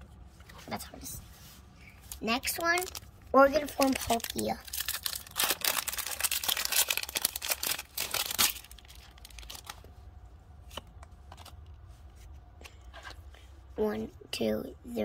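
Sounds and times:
foil wrapper tearing and crinkling: 0:02.1 - 0:03.0, 0:03.7 - 0:09.8.

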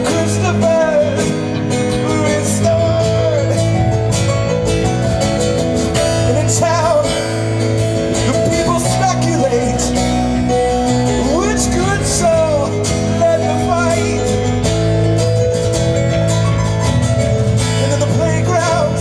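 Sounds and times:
live band playing: 0:00.0 - 0:19.0.

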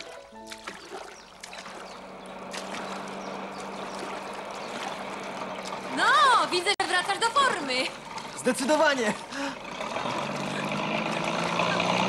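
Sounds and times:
water splashing around rowing boat: 0:00.0 - 0:12.0.

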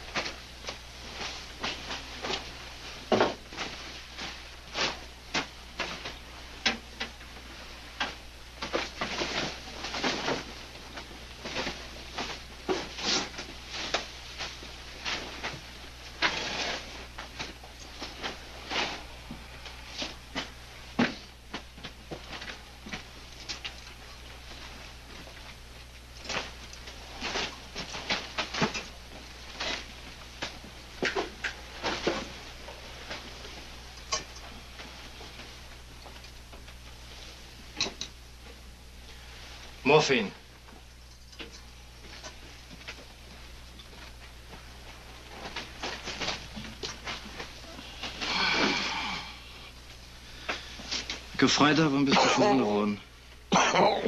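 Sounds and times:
rustling and crackling: 0:00.0 - 0:53.5
steady low hum: 0:00.0 - 0:54.0.

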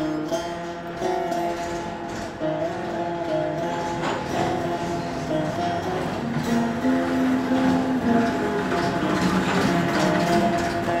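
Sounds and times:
mechanical clatter: 0:00.0 - 0:11.0
plucked keyed string melody: 0:00.0 - 0:11.0.

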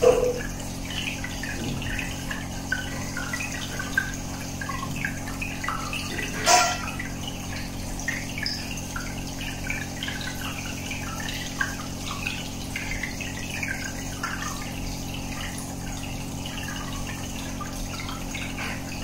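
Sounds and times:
aquarium air bubbling: 0:00.0 - 0:19.0
low pump hum: 0:00.0 - 0:19.0.

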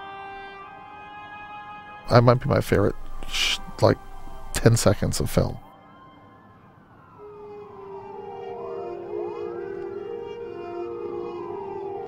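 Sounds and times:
sirens wailing: 0:00.0 - 0:12.0
steady low tone: 0:02.1 - 0:05.7.

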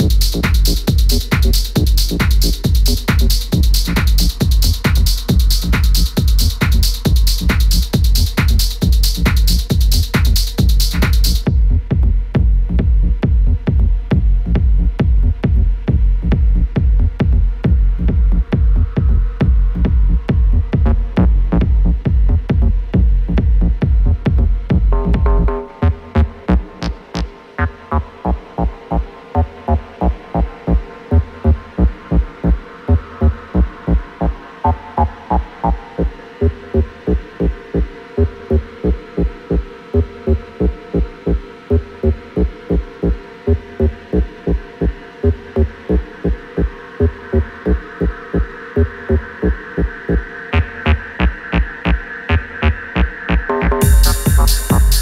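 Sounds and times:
steady kick drum: 0:00.0 - 0:27.4, 0:28.3 - 0:55.0.

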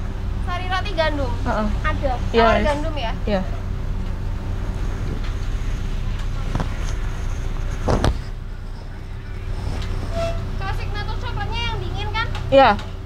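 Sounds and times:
car engine idling: 0:00.0 - 0:13.0.

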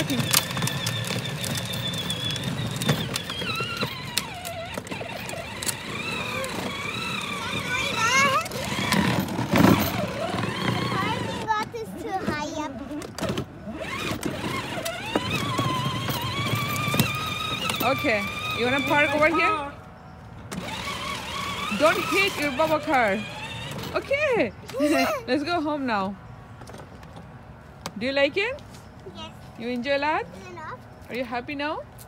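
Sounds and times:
toy truck running on asphalt: 0:00.0 - 0:25.1
child's wordless voice: 0:07.4 - 0:08.9, 0:10.8 - 0:13.0, 0:24.7 - 0:25.3, 0:29.0 - 0:29.5, 0:30.3 - 0:30.9.

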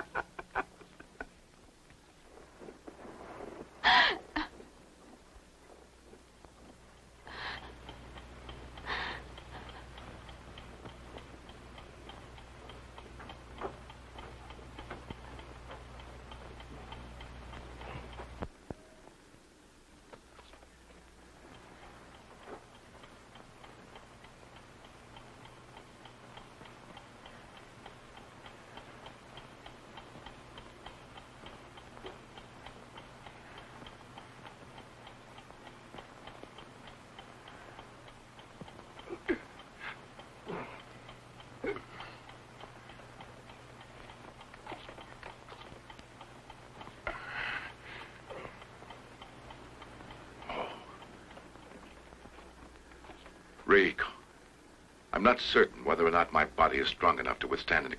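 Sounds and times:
low steady hum: 0:00.0 - 0:57.9
time bomb ticking: 0:06.3 - 0:20.0, 0:20.9 - 0:57.9.

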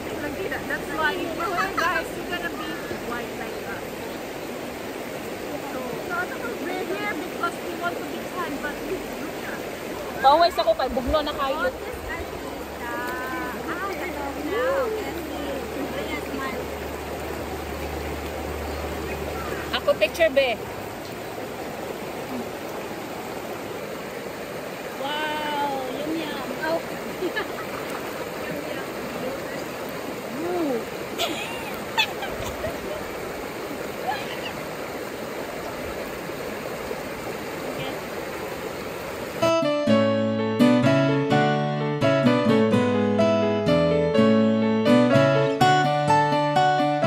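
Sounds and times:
river flowing over rocks: 0:00.0 - 0:39.7.

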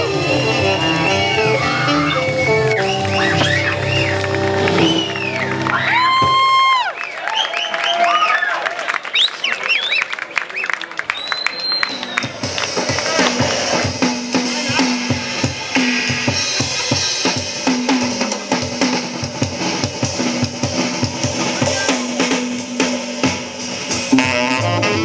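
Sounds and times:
live jazz band: 0:00.0 - 0:06.0, 0:12.2 - 0:25.0
saxophone: 0:00.0 - 0:06.1, 0:23.9 - 0:25.0
upright bass: 0:00.0 - 0:06.1, 0:24.0 - 0:25.0
crowd applauding and cheering: 0:00.0 - 0:17.2
whistling: 0:00.1 - 0:12.6.

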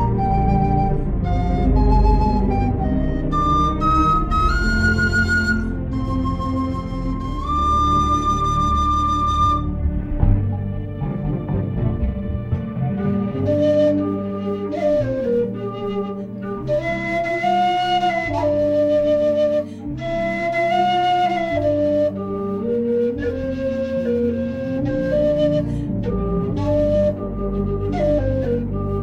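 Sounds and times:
whistle playing slow melody: 0:00.0 - 0:11.1, 0:12.8 - 0:29.0
low sustained accompaniment: 0:00.0 - 0:29.0.

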